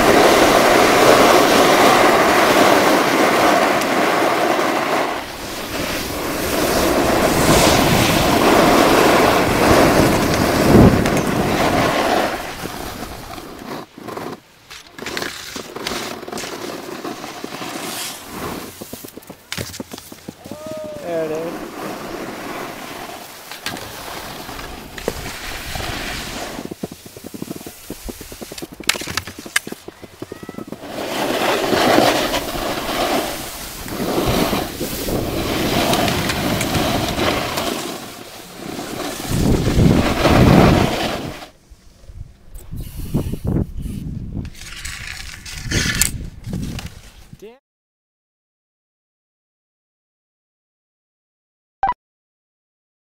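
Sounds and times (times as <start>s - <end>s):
skis scraping over snow: 0.0s - 42.0s
wind buffeting microphone: 5.2s - 13.4s, 24.6s - 37.6s, 38.9s - 41.4s, 42.0s - 47.4s.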